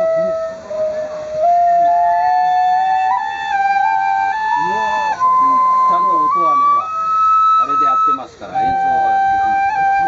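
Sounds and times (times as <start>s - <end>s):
bamboo flute melody: 0.0s - 10.0s.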